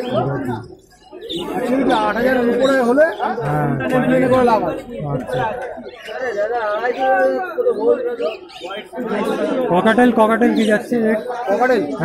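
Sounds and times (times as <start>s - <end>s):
men talking and chattering: 0.0s - 12.0s.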